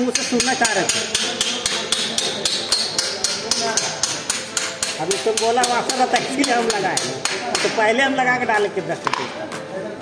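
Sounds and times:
hammer tapping metal: 0.0 - 7.8.

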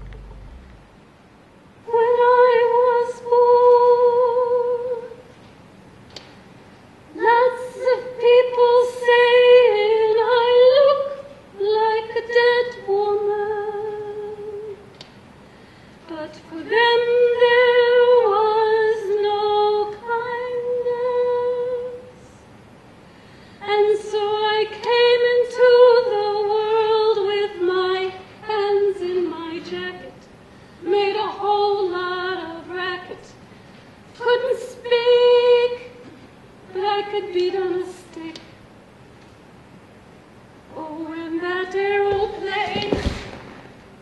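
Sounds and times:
high voice humming held notes: 0.0 - 1.0
woman singing unaccompanied: 1.8 - 5.3, 7.1 - 14.9, 16.0 - 22.4, 23.6 - 33.4, 34.1 - 38.6, 40.7 - 43.1.

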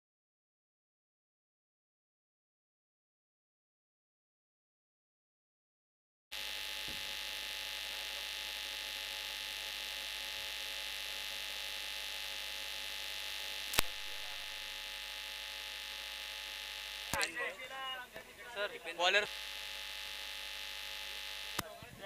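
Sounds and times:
electrical hum: 6.3 - 22.0
sharp click: 13.7 - 14.2.

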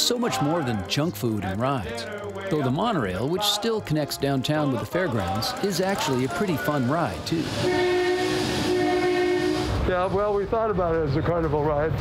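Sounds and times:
monorail train passing: 0.0 - 12.0.

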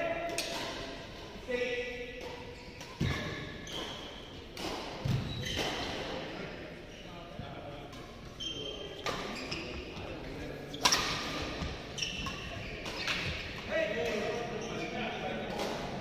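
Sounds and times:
rackets striking shuttlecock: 0.2 - 1.0, 2.2 - 6.0, 10.7 - 14.4.

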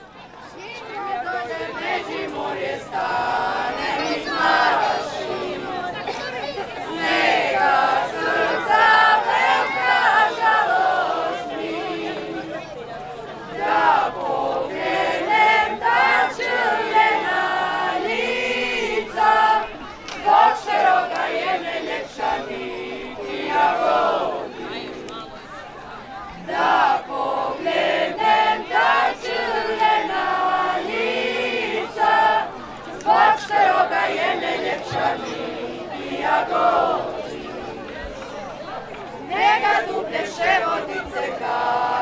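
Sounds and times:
mixed group singing folk song: 0.0 - 42.0.

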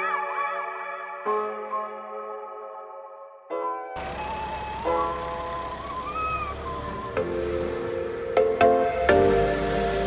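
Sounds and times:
sliding lead melody over chords: 0.0 - 10.0.

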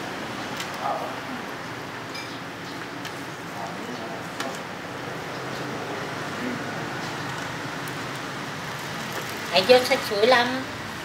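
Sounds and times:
busy street-food stall noise: 0.0 - 11.0.

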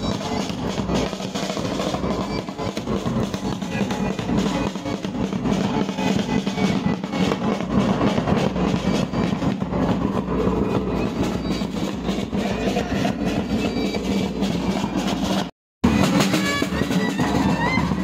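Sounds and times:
side drums playing: 0.0 - 18.0.

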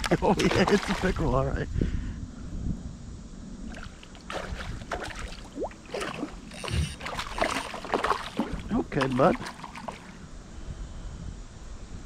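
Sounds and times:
fish thrashing and splashing: 0.3 - 1.2, 3.7 - 10.2.

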